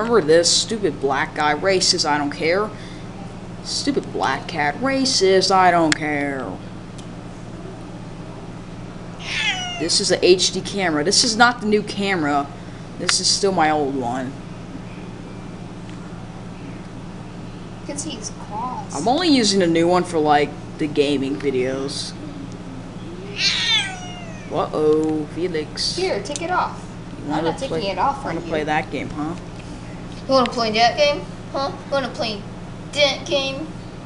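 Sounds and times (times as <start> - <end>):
low background hum: 0.0 - 34.0
cat meowing: 9.2 - 10.0, 23.3 - 24.6.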